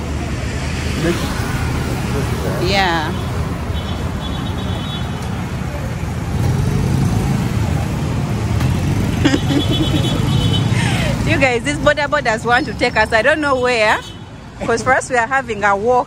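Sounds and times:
car engines passing: 0:00.0 - 0:16.0
motorcycle engines passing: 0:00.0 - 0:16.0
street traffic: 0:00.0 - 0:16.0
motorcycle passing close: 0:05.8 - 0:12.2.

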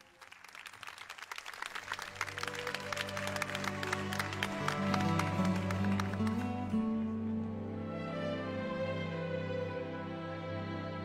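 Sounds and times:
audience applause: 0:00.0 - 0:07.2
slow instrumental sustained low notes: 0:02.5 - 0:11.0.

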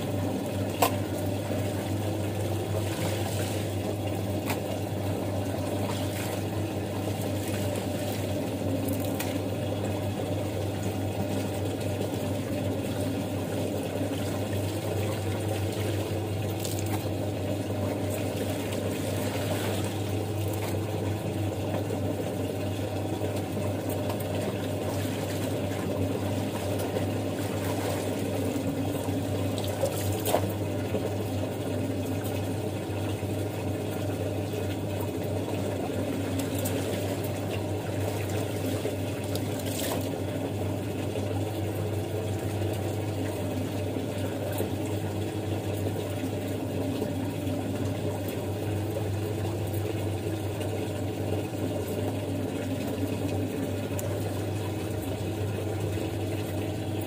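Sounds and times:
low motor hum: 0:00.0 - 0:57.0
wet clothes splashing in water: 0:00.6 - 0:09.8, 0:14.0 - 0:20.9, 0:23.5 - 0:30.9, 0:35.6 - 0:40.5
tap running into tub: 0:35.5 - 0:40.4.

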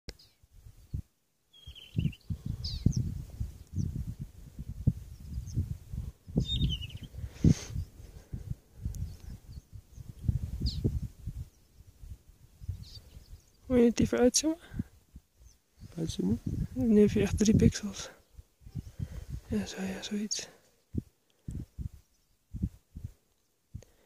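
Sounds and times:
wind buffeting microphone: 0:00.5 - 0:19.8, 0:20.9 - 0:24.0.

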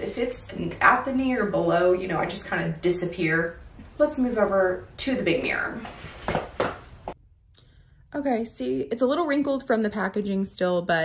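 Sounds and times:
footsteps on hard floor: 0:05.8 - 0:07.2.

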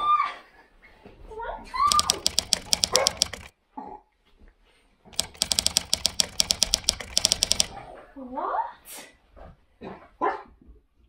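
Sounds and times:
small dog barking: 0:02.9 - 0:03.3.

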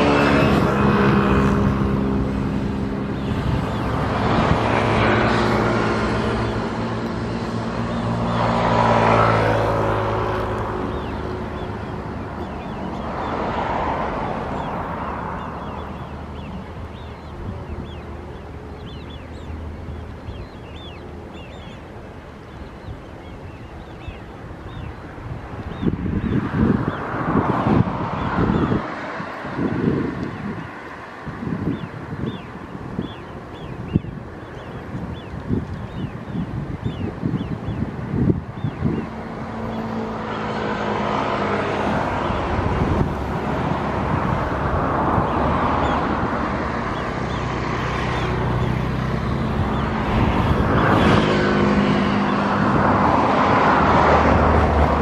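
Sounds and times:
vehicle noise: 0:00.0 - 0:55.0
wind buffeting microphone: 0:00.0 - 0:55.0
high bird calls: 0:09.5 - 0:29.2, 0:31.6 - 0:40.6, 0:46.8 - 0:52.6.

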